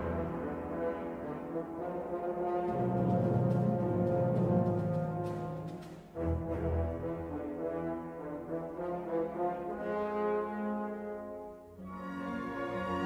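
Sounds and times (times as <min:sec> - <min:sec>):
orchestral brass chords: 0:00.0 - 0:13.0.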